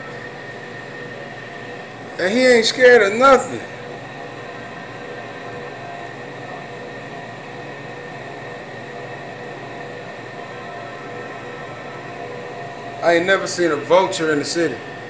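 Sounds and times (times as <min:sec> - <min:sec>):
faint steady tones: 0:00.0 - 0:15.0
mechanical hum and hiss: 0:00.0 - 0:15.0.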